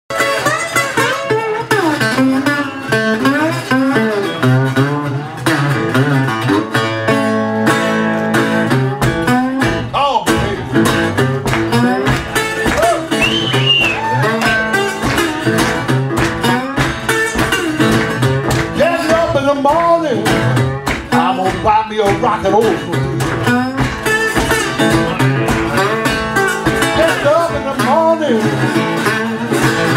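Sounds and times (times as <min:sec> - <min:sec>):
acoustic blues guitar: 0:00.1 - 0:29.9.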